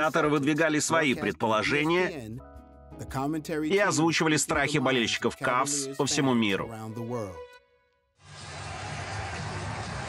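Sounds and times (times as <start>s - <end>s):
crowd hubbub in arena: 8.3s - 10.0s.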